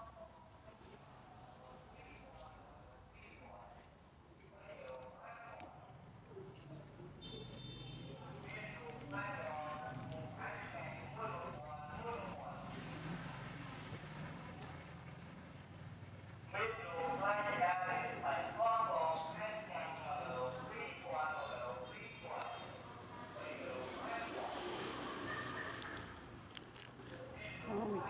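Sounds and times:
person talking: 27.2s - 28.0s.

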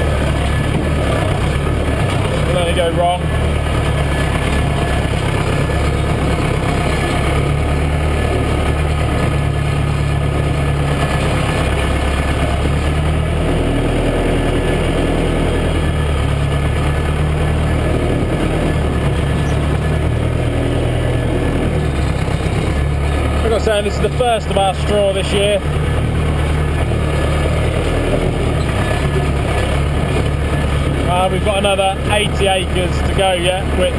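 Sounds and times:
tractor diesel engine running: 0.0s - 33.9s.

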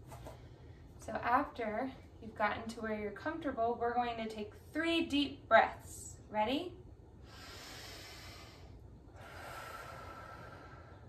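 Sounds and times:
slow deep breath: 7.2s - 11.0s.

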